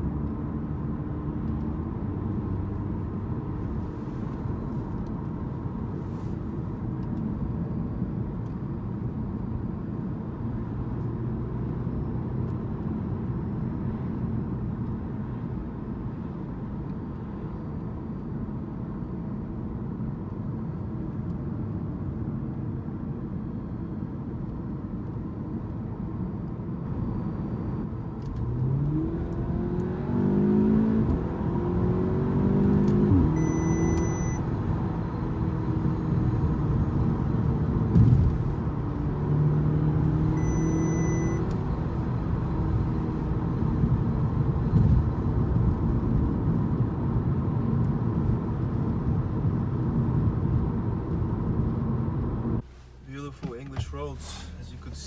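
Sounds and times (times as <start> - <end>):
road and tyre noise: 0.0 - 55.0
short electronic beep: 33.3 - 34.4, 40.3 - 41.4
exhaust pops: 53.0 - 54.6.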